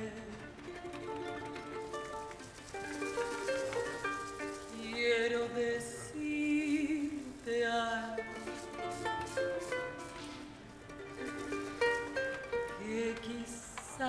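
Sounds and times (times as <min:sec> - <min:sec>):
woman singing with vibrato: 0:00.0 - 0:00.6, 0:04.6 - 0:10.0, 0:12.7 - 0:14.0
plucked ukulele: 0:00.0 - 0:14.0.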